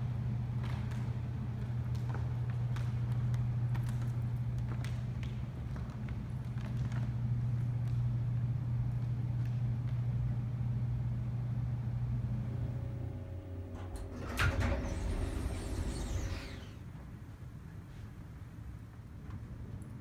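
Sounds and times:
elevator hum: 0:00.0 - 0:17.2
elevator doors sliding open: 0:12.6 - 0:16.9
elevator clunk: 0:12.8 - 0:16.8.

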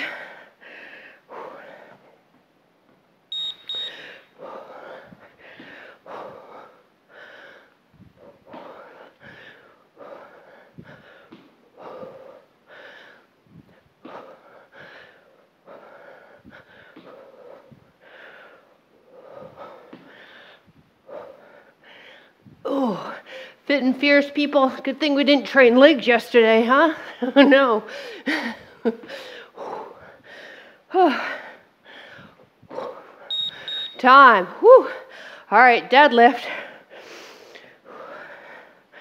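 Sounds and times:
woman breathing hard: 0:00.0 - 0:02.1, 0:03.8 - 0:23.6, 0:27.0 - 0:33.9, 0:34.8 - 0:35.5, 0:36.5 - 0:39.0
high electronic timer beep: 0:03.3 - 0:04.2, 0:33.3 - 0:34.2.

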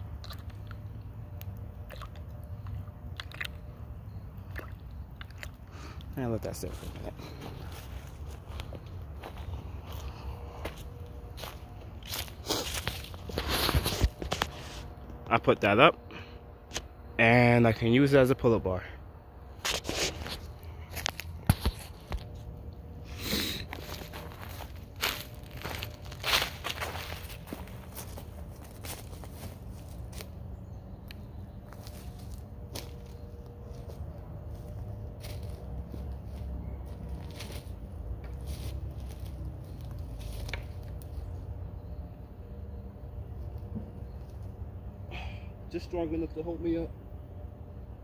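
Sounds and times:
low steady background noise: 0:00.0 - 0:48.0
footsteps crunching through dry leaves: 0:06.4 - 0:15.0, 0:19.6 - 0:30.8, 0:31.4 - 0:41.5.

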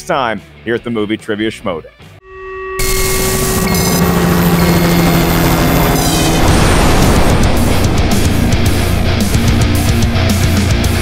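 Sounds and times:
low hum: 0:02.2 - 0:11.0
stuttering electronic chirp: 0:02.3 - 0:09.0
glitch rushing noise: 0:02.8 - 0:10.7.

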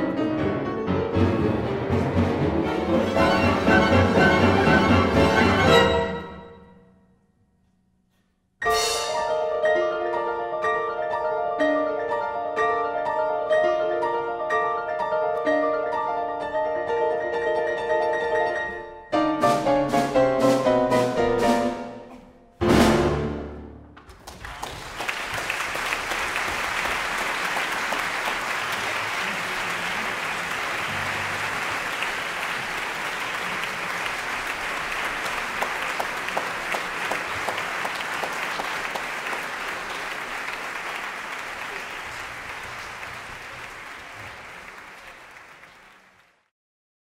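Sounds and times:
audience applauding: 0:24.0 - 0:46.5.

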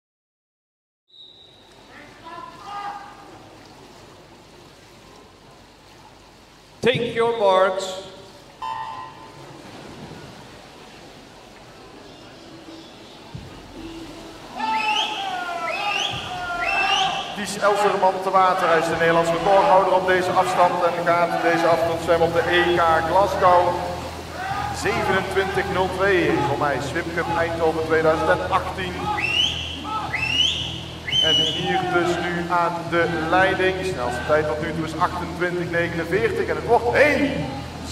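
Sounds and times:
reverberant pool hall noise: 0:01.4 - 0:37.9
man talking: 0:06.8 - 0:08.2, 0:14.6 - 0:24.0, 0:24.6 - 0:29.2, 0:31.2 - 0:37.9.

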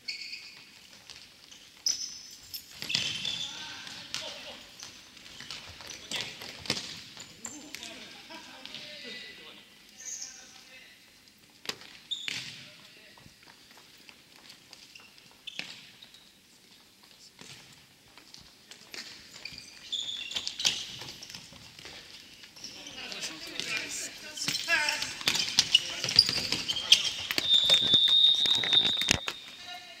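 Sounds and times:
ball bouncing on wooden floor: 0:23.5 - 0:28.2.

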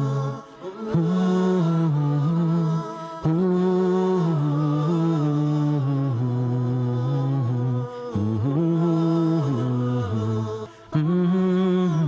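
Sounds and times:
man humming a slow melody: 0:00.0 - 0:12.0.

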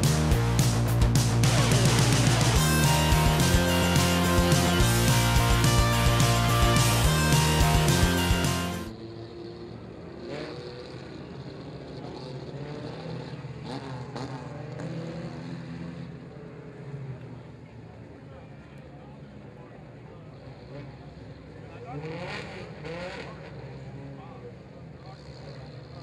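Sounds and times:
rock music with guitar: 0:00.0 - 0:08.9
race car engines: 0:00.0 - 0:26.0.

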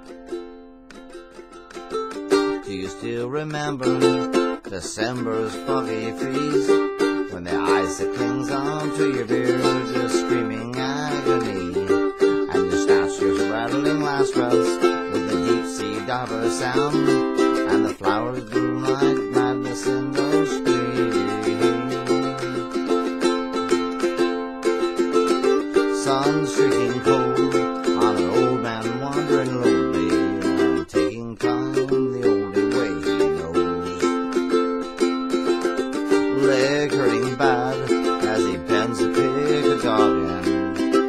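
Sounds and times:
ukulele strumming chords: 0:00.0 - 0:41.0.

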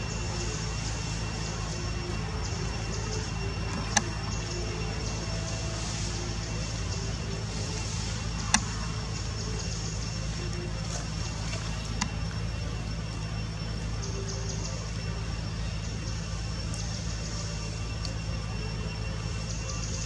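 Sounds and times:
faint high whine: 0:00.0 - 0:20.0
low mechanical hum: 0:00.0 - 0:20.0
sharp clicks: 0:03.7 - 0:04.4.

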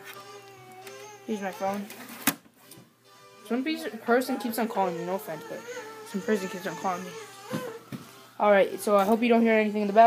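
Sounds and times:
faint steady musical tones: 0:00.0 - 0:10.0.

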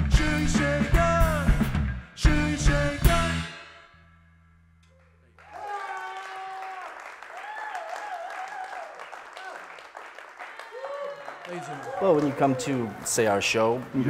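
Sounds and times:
audience clapping and cheering: 0:04.9 - 0:14.0
long whooping shouts: 0:05.4 - 0:09.7, 0:10.7 - 0:13.1.

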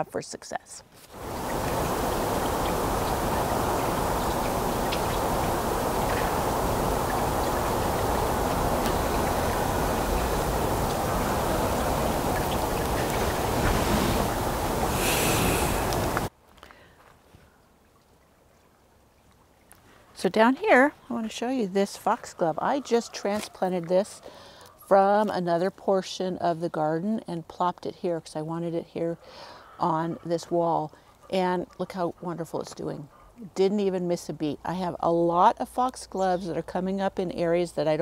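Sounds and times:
loud rushing noise: 0:01.2 - 0:16.3.

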